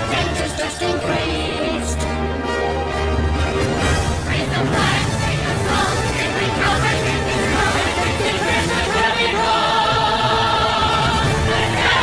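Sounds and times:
choir singing held notes: 3.9 - 12.0.

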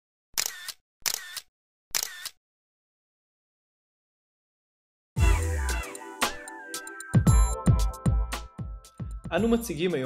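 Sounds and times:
camera shutter clicks: 0.4 - 2.4.

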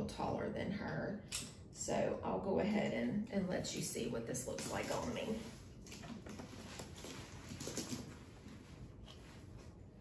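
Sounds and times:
leather bag rustling: 5.1 - 9.7.

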